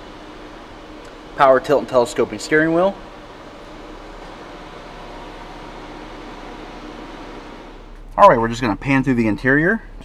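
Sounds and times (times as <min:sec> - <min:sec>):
ventilation fan hiss: 0:00.0 - 0:10.0.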